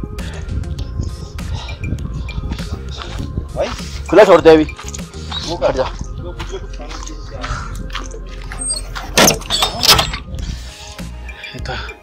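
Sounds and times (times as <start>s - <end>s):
background music: 0.0s - 12.0s
footsteps: 2.4s - 9.7s.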